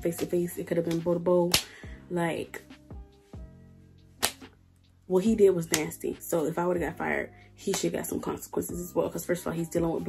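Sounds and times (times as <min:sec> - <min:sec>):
faint music with held notes: 0:00.0 - 0:10.0.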